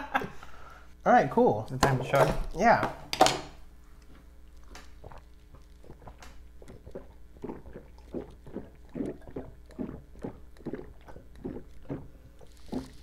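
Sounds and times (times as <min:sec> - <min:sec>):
people gulping drinks: 0:04.6 - 0:13.0.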